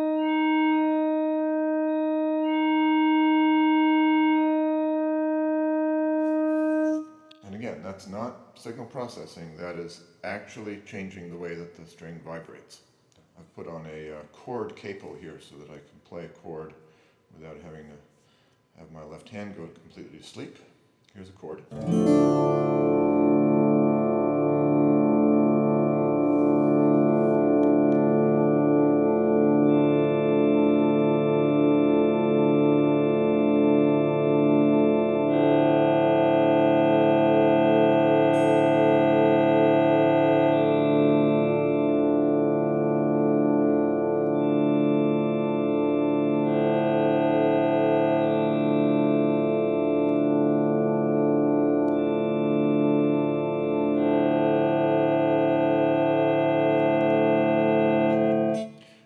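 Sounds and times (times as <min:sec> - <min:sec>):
sustained acoustic guitar chord: 0:21.7 - 0:44.0.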